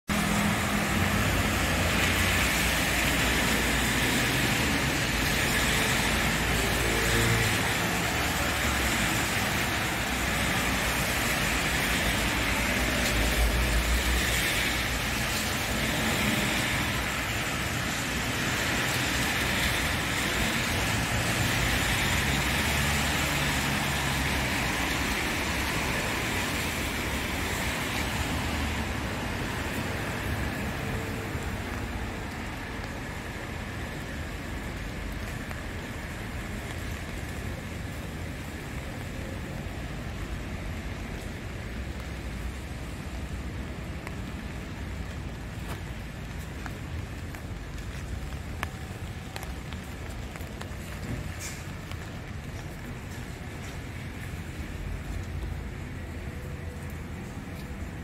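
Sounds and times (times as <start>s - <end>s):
passing cars rumbling: 0.1s - 58.0s
tyres hissing on wet road: 0.1s - 58.0s.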